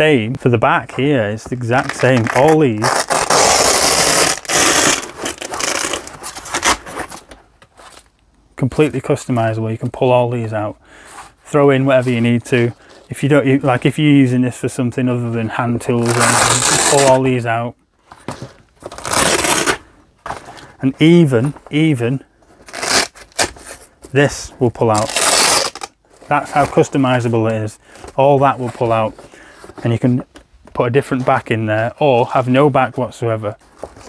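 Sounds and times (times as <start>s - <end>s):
hook-and-loop tearing: 1.8s - 6.9s, 16.0s - 17.2s, 19.0s - 19.8s, 22.6s - 23.6s, 24.9s - 25.9s
velcro ripping apart: 1.8s - 7.2s, 16.0s - 17.2s, 18.9s - 19.9s, 22.6s - 23.7s, 24.9s - 26.0s.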